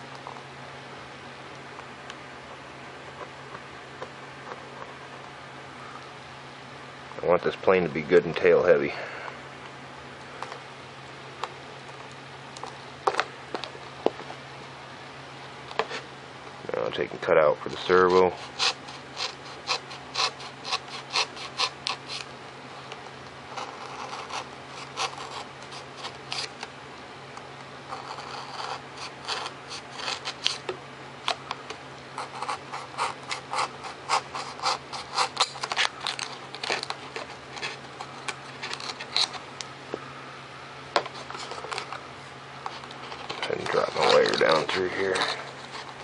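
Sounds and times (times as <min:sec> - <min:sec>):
hobby knife cutting foam: 0:18.4 - 0:22.3, 0:23.5 - 0:26.6, 0:27.9 - 0:30.7, 0:32.2 - 0:37.8.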